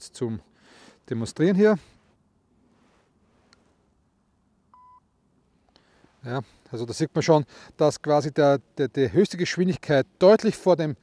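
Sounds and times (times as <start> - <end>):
short electronic beep: 4.7 - 5.0.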